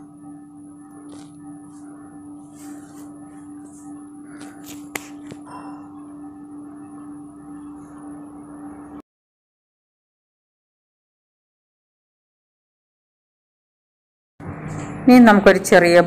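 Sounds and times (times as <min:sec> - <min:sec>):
steady low hum: 0:00.0 - 0:09.0, 0:14.4 - 0:16.0.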